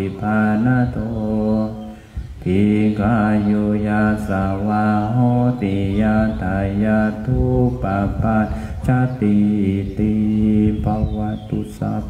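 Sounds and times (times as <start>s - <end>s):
monks chanting: 0.0s - 12.0s.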